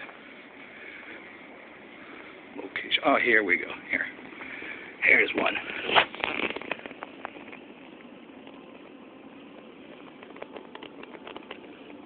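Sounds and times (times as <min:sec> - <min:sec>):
low indoor hum: 0:00.0 - 0:12.0.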